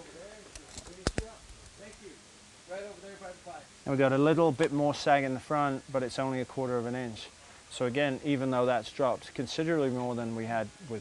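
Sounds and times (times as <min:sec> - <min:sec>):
sharp clicks: 0:00.5 - 0:01.8.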